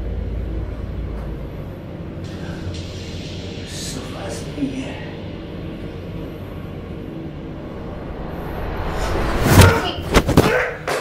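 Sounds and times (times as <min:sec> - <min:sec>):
rising rush: 0:06.8 - 0:10.4
loud thump of scuffle: 0:09.3 - 0:10.6.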